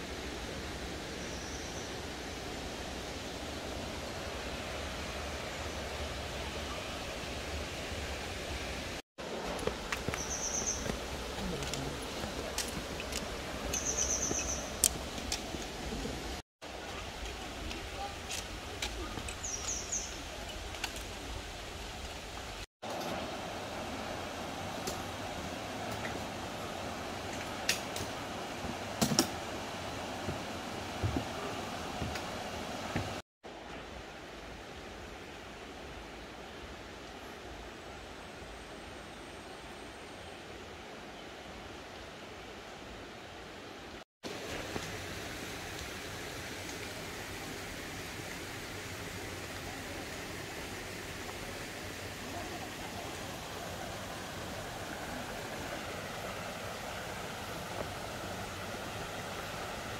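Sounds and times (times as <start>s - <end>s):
stream rushing over rocks: 1.8s - 37.6s, 41.4s - 59.9s.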